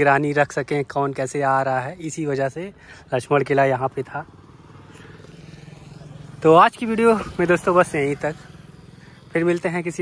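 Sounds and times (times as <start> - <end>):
small engine running: 2.7 - 10.0.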